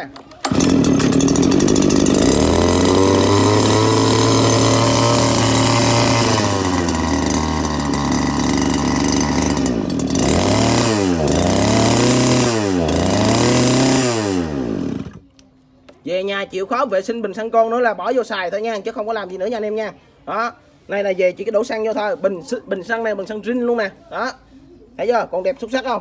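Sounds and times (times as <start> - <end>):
small petrol engine running: 0.1 - 15.2
engine revving: 0.4 - 15.2.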